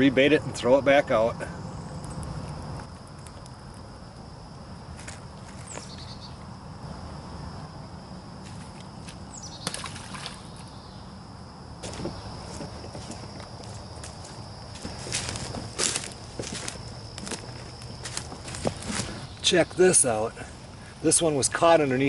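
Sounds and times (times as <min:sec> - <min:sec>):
high insect buzz: 0:01.5 - 0:20.8.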